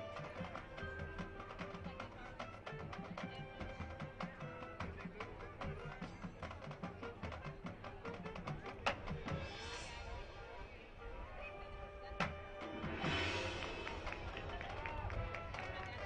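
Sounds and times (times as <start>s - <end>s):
marching band playing: 0.0s - 16.0s.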